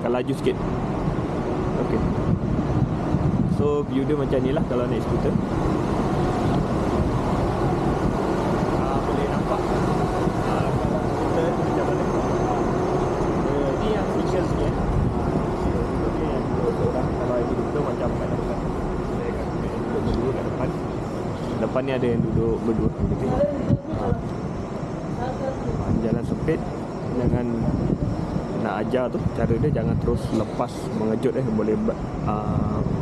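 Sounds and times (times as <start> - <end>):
scooter rumble and wind noise: 0.0 - 31.4, 32.0 - 33.0
faint voices: 6.4 - 33.0.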